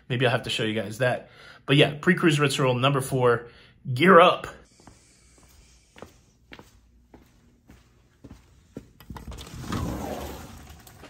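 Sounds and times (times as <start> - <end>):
footsteps on tile floor: 4.7 - 9.0.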